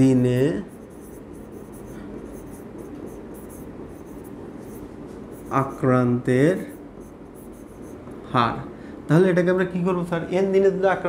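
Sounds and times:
pen scratching on display: 0.0 - 8.1
low room hum: 0.0 - 11.0.

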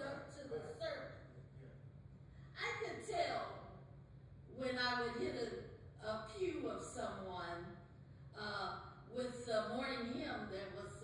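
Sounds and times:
person talking: 0.0 - 1.0, 4.6 - 6.3.

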